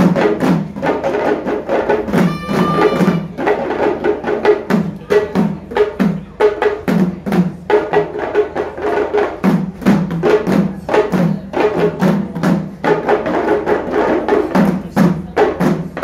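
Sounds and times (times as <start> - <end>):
drums in quick steady rhythm: 0.0 - 16.0.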